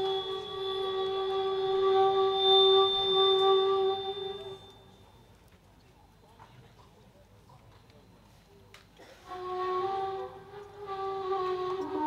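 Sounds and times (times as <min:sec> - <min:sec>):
held musical tone: 0:00.0 - 0:05.5, 0:09.3 - 0:12.0.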